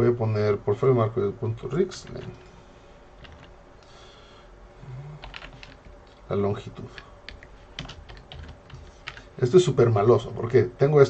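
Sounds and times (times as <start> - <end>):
typing on computer keyboard: 3.2 - 3.5, 5.2 - 6.0, 6.9 - 9.3.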